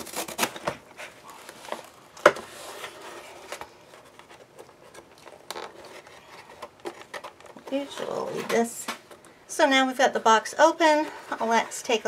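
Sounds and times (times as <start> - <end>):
cardboard scraping and rustling: 0.0 - 8.6.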